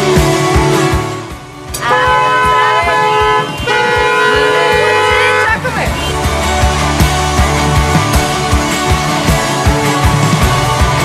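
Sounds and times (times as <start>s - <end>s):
vehicle horn blasts: 1.8s - 5.6s.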